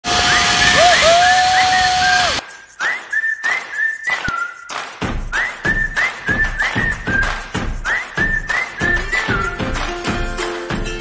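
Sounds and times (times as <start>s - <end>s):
person whistling a tune: 0.3s - 9.9s.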